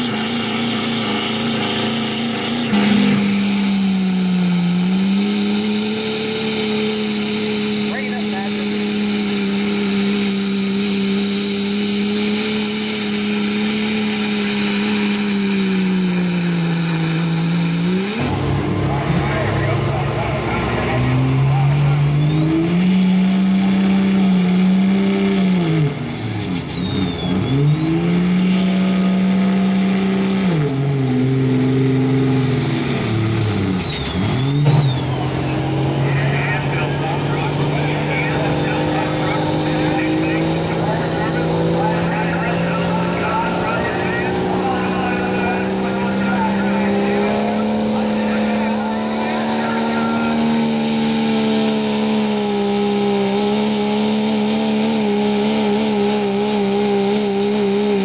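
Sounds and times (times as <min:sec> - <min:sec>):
diesel engine at full throttle: 0:00.0 - 0:58.0
turbo whistle: 0:43.2 - 0:47.5.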